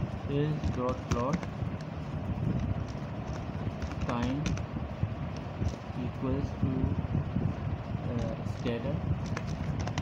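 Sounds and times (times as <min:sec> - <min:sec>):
low background rumble: 0:00.0 - 0:10.0
keyboard keys clicking: 0:02.8 - 0:04.6.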